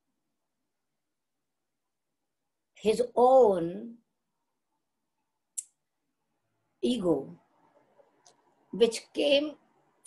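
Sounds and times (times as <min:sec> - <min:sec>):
woman speaking: 0:02.8 - 0:04.0, 0:06.8 - 0:07.4, 0:08.7 - 0:09.6.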